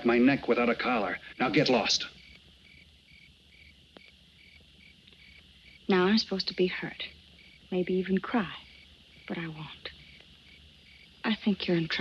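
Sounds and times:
cricket chirping: 0.0 - 12.0.

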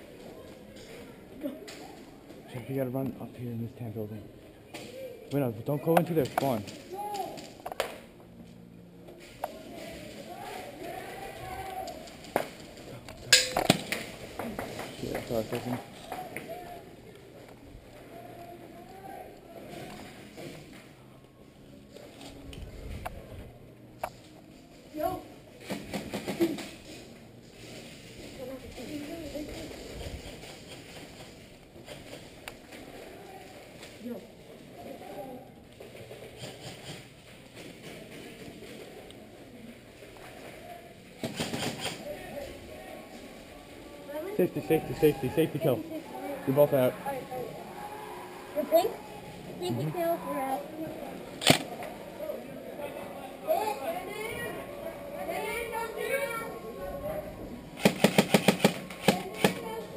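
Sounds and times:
muffled voices: 0.0 - 59.9.

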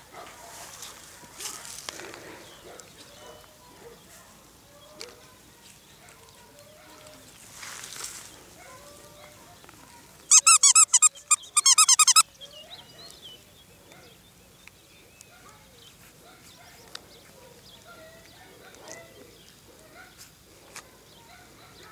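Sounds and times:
squeaky dog toy squeaking: 10.3 - 12.2.

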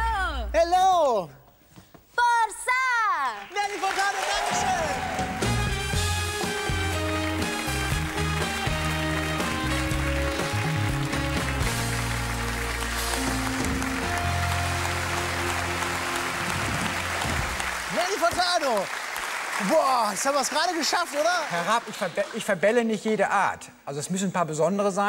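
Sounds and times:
audience applause: 3.4 - 22.8
band playing upbeat music: 4.4 - 18.6
man speaking: 19.6 - 25.0.

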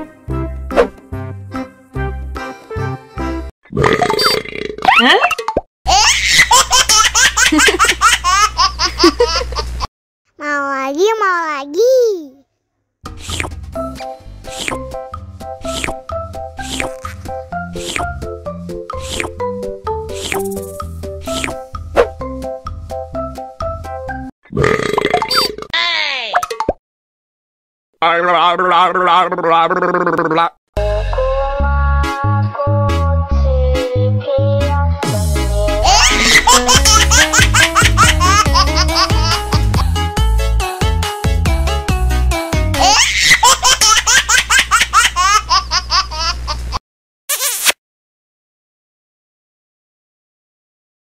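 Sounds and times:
high-pitched laughter: 5.9 - 9.8, 35.8 - 39.9, 42.8 - 46.6
children's electronic music: 13.8 - 24.1, 30.8 - 44.2.

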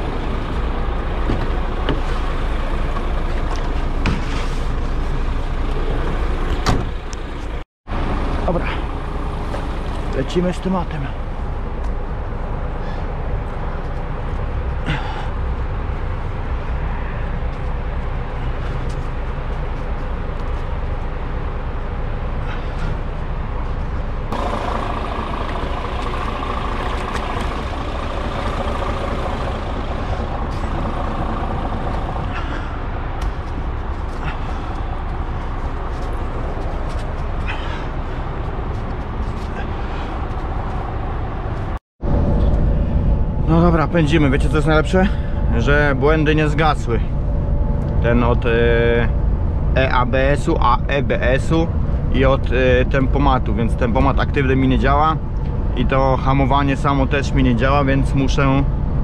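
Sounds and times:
diesel truck engine idling: 0.0 - 16.8, 17.9 - 41.8
higher hum: 22.0 - 44.4.

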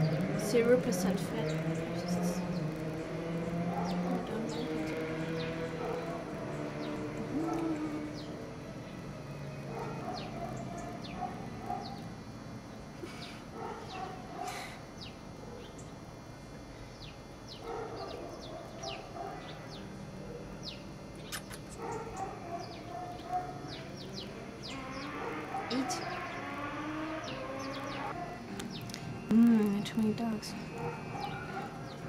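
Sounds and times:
dogs barking: 1.4 - 8.6, 9.4 - 12.2, 13.4 - 15.9, 17.5 - 28.7, 30.5 - 32.0.

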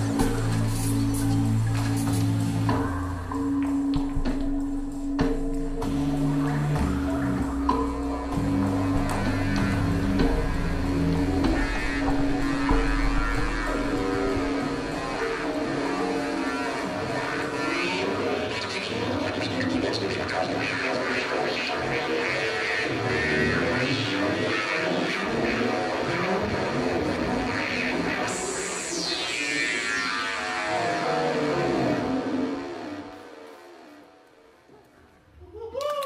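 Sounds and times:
low bass line: 0.0 - 18.4
held droning tone: 0.0 - 34.6.

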